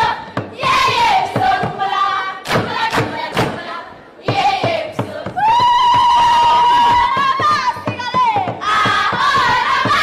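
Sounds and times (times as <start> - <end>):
girls singing in chorus: 0.0 - 10.0.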